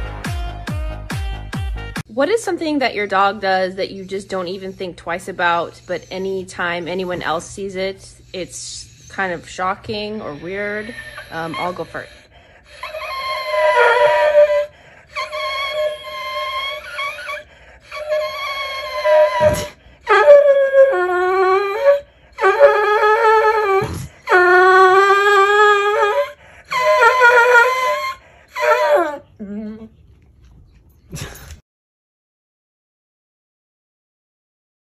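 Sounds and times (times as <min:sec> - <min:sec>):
hound dog howling: 0:12.8 - 0:29.4.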